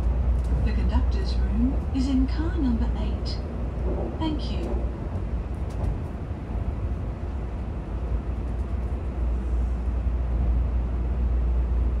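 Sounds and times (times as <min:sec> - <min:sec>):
train rumble inside passenger car: 0:00.0 - 0:12.0.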